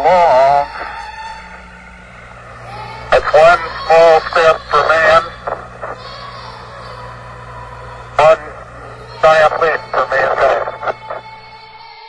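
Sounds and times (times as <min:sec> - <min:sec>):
man speaking over radio: 0:00.0 - 0:01.0, 0:03.1 - 0:06.2, 0:08.1 - 0:11.4
static hiss: 0:00.0 - 0:11.8
held musical tone: 0:00.0 - 0:12.0
steady hum: 0:00.0 - 0:12.0.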